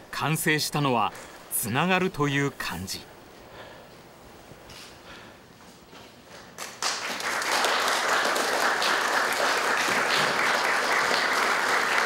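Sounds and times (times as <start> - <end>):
audience applause: 6.6 - 12.0.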